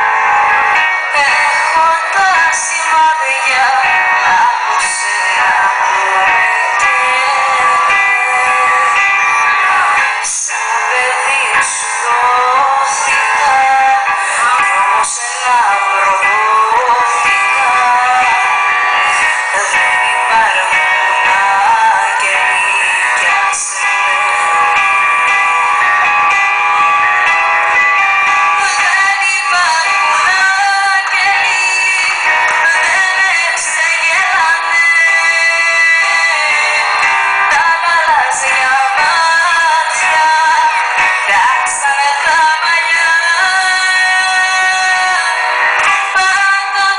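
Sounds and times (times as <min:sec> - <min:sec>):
keyboard: 0:00.0 - 0:46.9
small live band: 0:00.0 - 0:46.9
woman singing into a microphone: 0:00.0 - 0:46.9.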